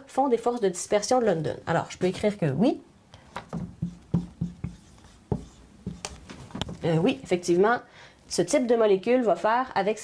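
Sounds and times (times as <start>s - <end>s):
marker writing on whiteboard: 3.4s - 7.2s.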